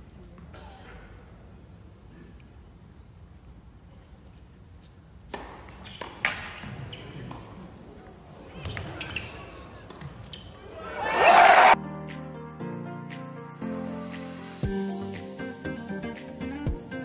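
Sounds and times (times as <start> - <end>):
crowd cheering and applause: 10.8 - 11.8.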